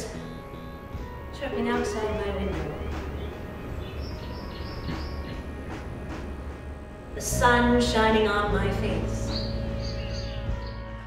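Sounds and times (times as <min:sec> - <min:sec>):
birds chirping: 0:00.0 - 0:07.1, 0:07.9 - 0:11.0.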